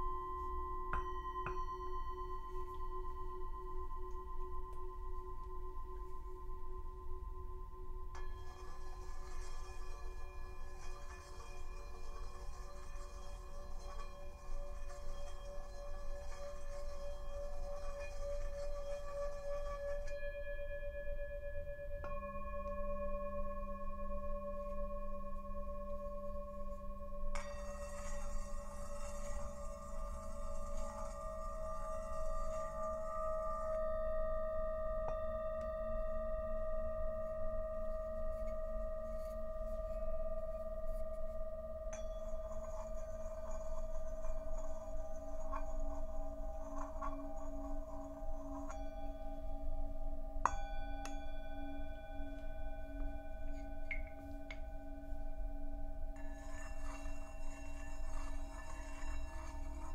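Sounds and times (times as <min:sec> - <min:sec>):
singing bowls ringing: 0:00.0 - 0:59.9.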